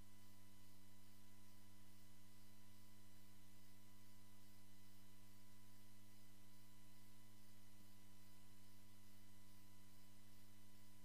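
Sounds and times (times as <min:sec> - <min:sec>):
faint microphone hiss: 0:00.0 - 0:11.0
low electrical hum: 0:00.0 - 0:11.0.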